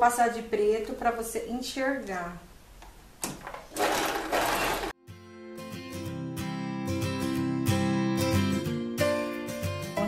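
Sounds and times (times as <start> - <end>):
sewing machine whirring: 3.4 - 5.0.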